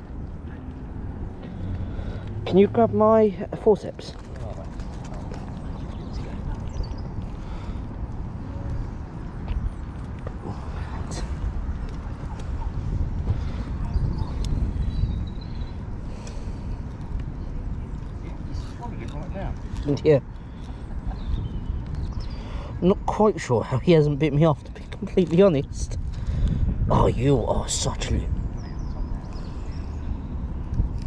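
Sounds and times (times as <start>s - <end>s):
steady low rumble: 0.0s - 31.0s.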